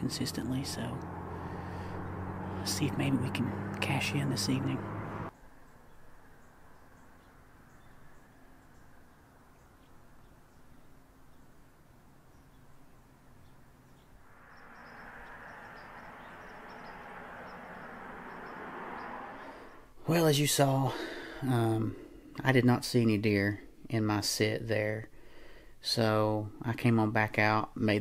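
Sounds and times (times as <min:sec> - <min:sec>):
faint high chirps: 0:13.4 - 0:19.8.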